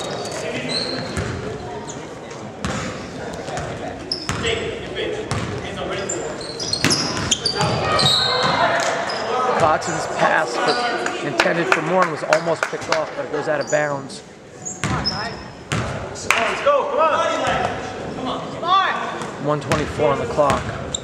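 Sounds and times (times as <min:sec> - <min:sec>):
sneakers squeaking on hardwood: 0:00.0 - 0:04.6, 0:05.3 - 0:09.7, 0:14.6 - 0:15.9
crowd chatter echoing: 0:00.0 - 0:21.0
basketball bouncing: 0:05.3 - 0:05.6, 0:14.8 - 0:15.0.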